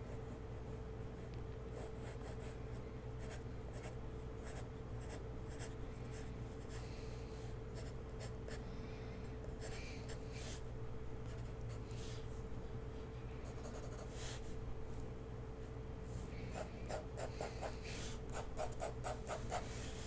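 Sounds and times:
pencil sketching on paper: 0:13.4 - 0:14.3.

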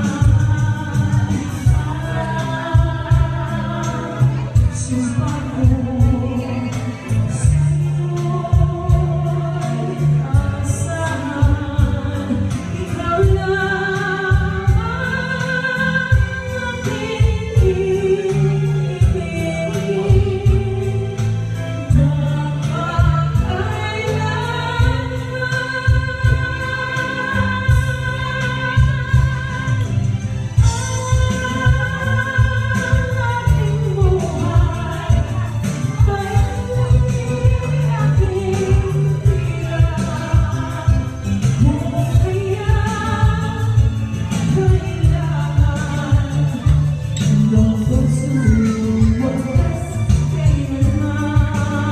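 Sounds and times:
backing track with bass and drums: 0:00.0 - 0:51.9
woman singing a slow ballad: 0:00.0 - 0:51.9.

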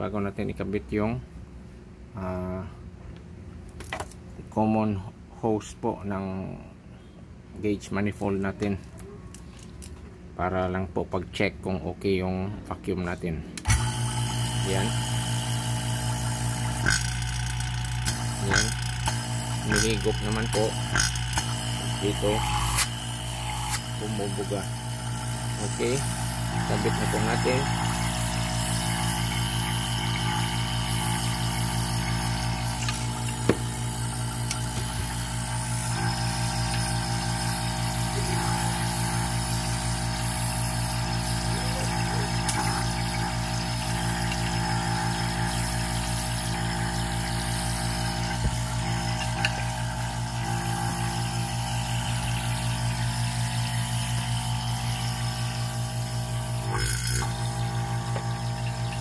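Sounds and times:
vacuum pump humming: 0:13.6 - 0:59.0.

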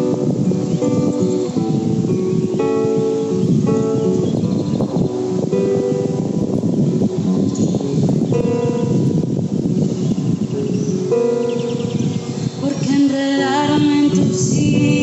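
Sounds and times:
classical guitar playing: 0:00.0 - 0:15.0.

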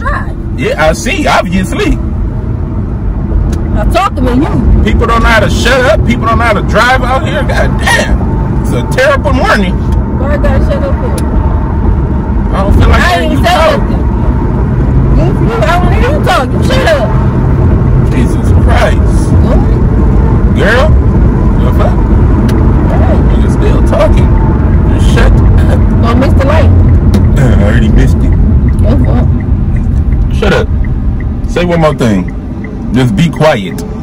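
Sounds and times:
car road and engine rumble: 0:00.0 - 0:34.0
voices talking: 0:12.4 - 0:14.4, 0:15.0 - 0:17.3, 0:18.0 - 0:34.0.

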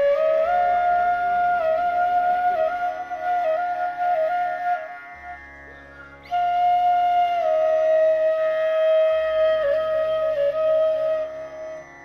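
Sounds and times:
flute holding long note: 0:00.0 - 0:05.5, 0:06.2 - 0:12.0.

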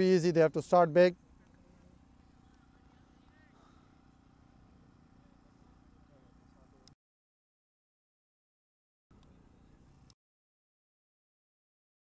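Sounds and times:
faint distant voices: 0:01.5 - 0:07.0.

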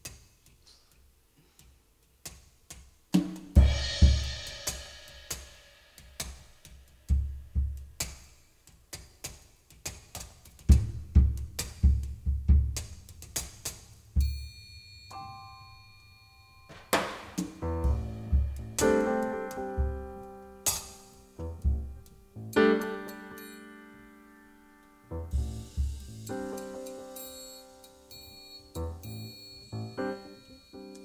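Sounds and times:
drums struck with mallets: 0:03.2 - 0:08.3, 0:10.6 - 0:15.5, 0:16.6 - 0:23.2, 0:25.2 - 0:31.0
cymbal wash: 0:03.6 - 0:07.2.

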